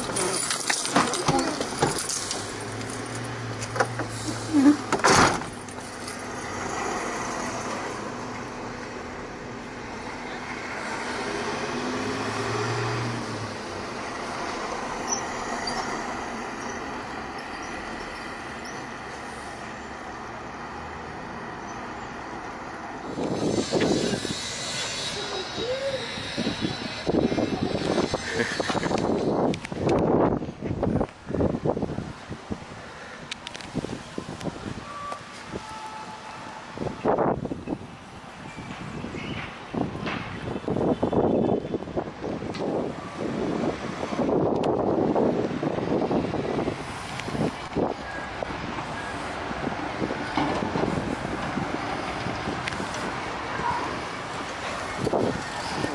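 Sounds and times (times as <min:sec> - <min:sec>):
street traffic: 0:00.0 - 0:55.9
vehicles passing: 0:00.0 - 0:55.9.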